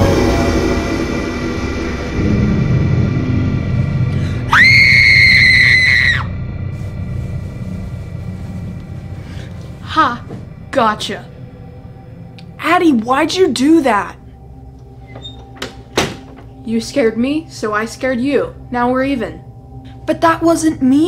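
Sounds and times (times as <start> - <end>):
horror-style music: 0.0 - 21.0
low rumble: 0.0 - 21.0
girl screaming: 4.5 - 6.3.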